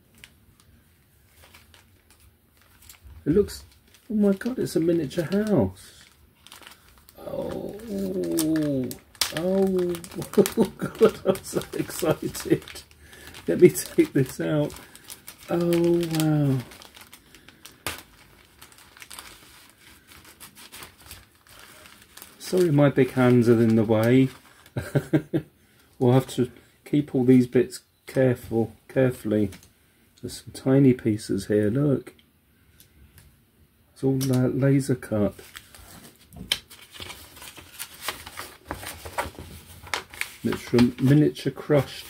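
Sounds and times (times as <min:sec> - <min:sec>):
paper rustling: 0:00.0 - 0:25.2, 0:35.3 - 0:42.0
plastic bag crinkling: 0:00.0 - 0:25.2, 0:35.3 - 0:42.0.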